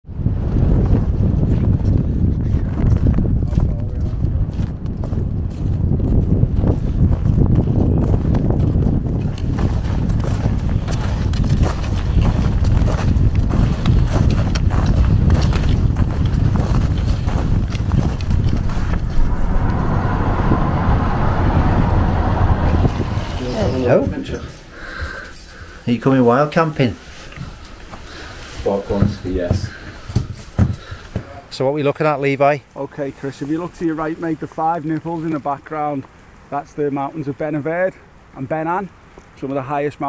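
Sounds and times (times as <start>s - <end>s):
wind buffeting microphone: 0.0s - 25.2s
footsteps crunching on snow: 2.5s - 19.2s.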